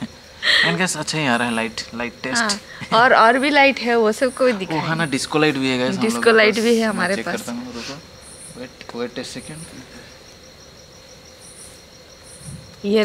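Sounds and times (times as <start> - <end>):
crickets trilling: 0.0 - 13.0
high-pitched insect calls: 0.0 - 13.0.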